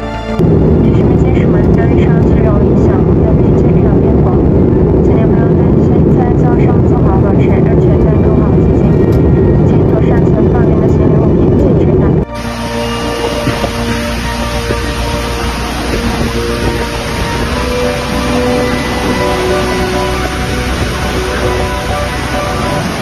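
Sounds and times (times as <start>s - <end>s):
light aircraft cabin noise: 0.0s - 23.0s.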